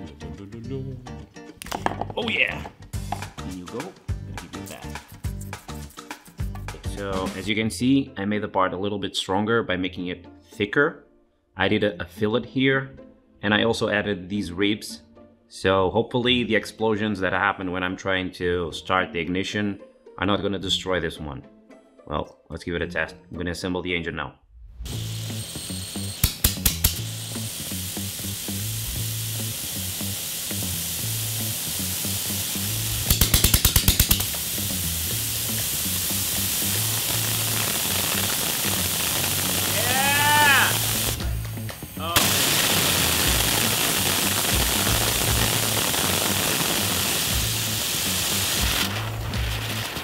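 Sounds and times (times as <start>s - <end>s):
jet engine hissing: 24.9s - 50.0s
rapid sharp clicks: 26.2s - 27.0s, 33.0s - 34.4s, 42.2s - 47.5s.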